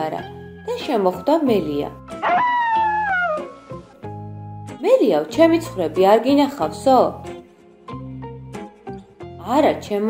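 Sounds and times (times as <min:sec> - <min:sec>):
background music: 0:00.0 - 0:10.0
howl-like cry falling in pitch: 0:02.2 - 0:03.8.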